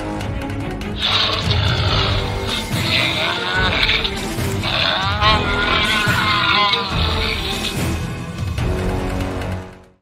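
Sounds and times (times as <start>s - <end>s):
background music: 0.0s - 10.0s
toy dinosaur electronic calls: 2.9s - 7.7s.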